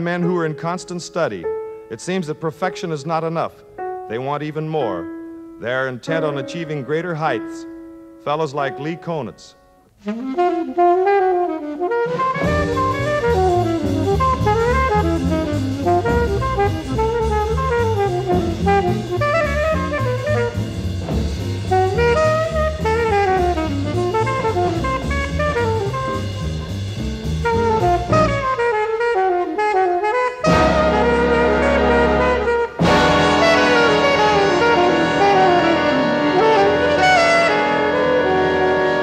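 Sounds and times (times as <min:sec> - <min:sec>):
bass: 0:00.0 - 0:39.0
alto saxophone jazz solo: 0:09.8 - 0:39.0
drums: 0:10.0 - 0:39.0.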